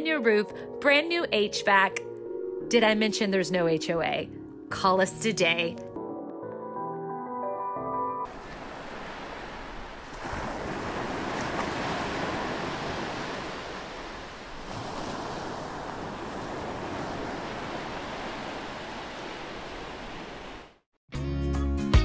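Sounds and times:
ocean surf rushing: 8.3s - 20.8s.

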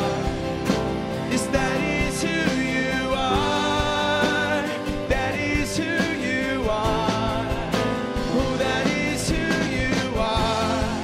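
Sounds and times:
drum kit: 0.0s - 11.0s
electric bass: 0.0s - 11.0s
man singing lead: 0.0s - 11.0s
strummed acoustic guitar: 0.0s - 11.0s.

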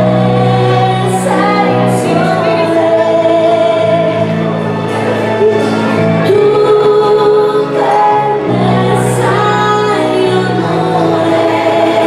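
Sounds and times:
waltz music with singer: 0.0s - 12.0s.

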